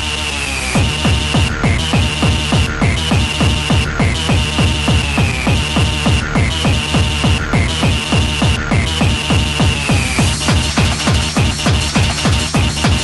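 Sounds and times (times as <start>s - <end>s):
fast kick drum: 0.8s - 13.0s.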